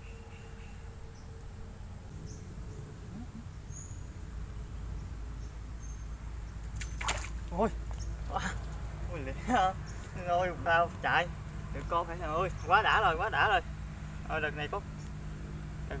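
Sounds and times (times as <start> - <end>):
faint high insect buzz: 0.0 - 8.0
water splash and pole swish: 6.8 - 8.0.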